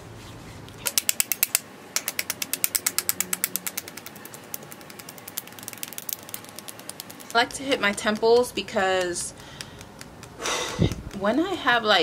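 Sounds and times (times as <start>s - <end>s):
fingernails tapping on skin: 0.9s - 11.8s.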